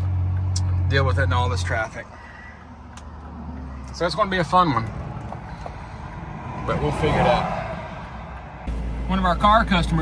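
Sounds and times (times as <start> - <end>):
truck engine hum: 0.0 - 10.0.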